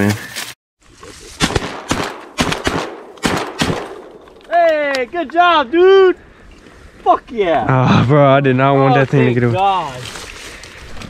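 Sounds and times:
shotgun blasts: 0:01.4 - 0:04.2.

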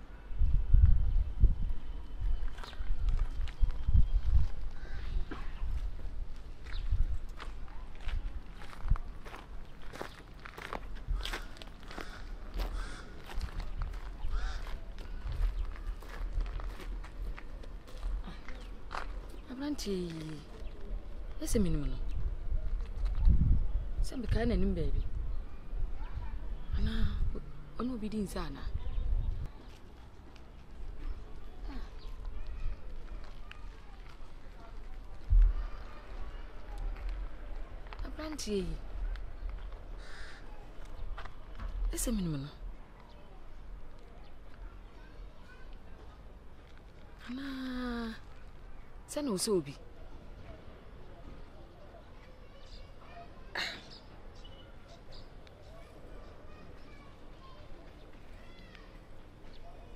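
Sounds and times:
wind rumbling on microphone: 0:00.0 - 0:19.4, 0:20.5 - 0:27.8, 0:28.4 - 0:29.6, 0:30.8 - 0:38.1
footsteps on gravel: 0:02.4 - 0:20.8, 0:29.5 - 0:38.1
faint voice: 0:31.2 - 0:37.8.

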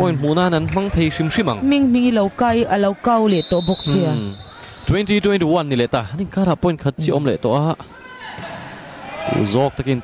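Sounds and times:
commentator speaking: 0:03.4 - 0:05.2.

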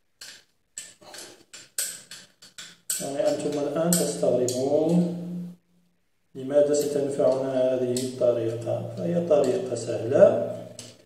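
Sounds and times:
metal parts clicking: 0:00.2 - 0:05.2, 0:06.7 - 0:09.9, 0:10.5 - 0:11.0.

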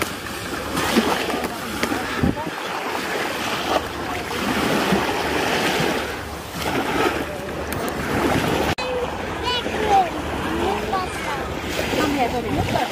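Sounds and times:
small waves washing on shore: 0:00.0 - 0:12.9
wind buffeting microphone: 0:00.0 - 0:12.9
voices of bathers: 0:00.5 - 0:12.9.

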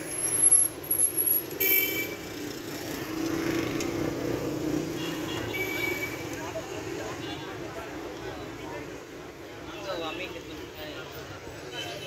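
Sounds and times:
motor vehicles running: 0:00.0 - 0:09.6.

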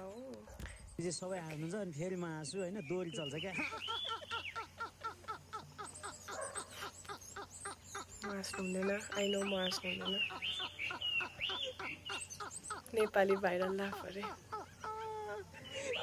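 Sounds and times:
men laughing hard: 0:03.5 - 0:06.2, 0:11.2 - 0:16.0.

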